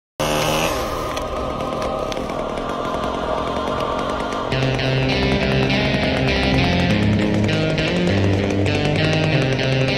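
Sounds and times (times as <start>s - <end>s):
chainsaw cutting wood: 0.2s - 2.8s, 4.5s - 9.9s.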